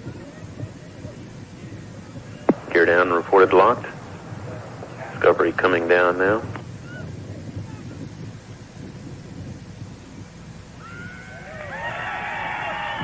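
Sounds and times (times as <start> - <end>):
low wind rumble: 0.0 - 13.0
tyres squealing on runway: 10.8 - 13.0.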